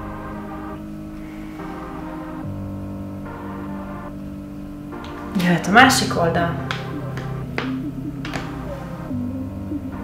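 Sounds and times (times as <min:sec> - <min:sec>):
soft sustained chords: 0:00.0 - 0:10.0.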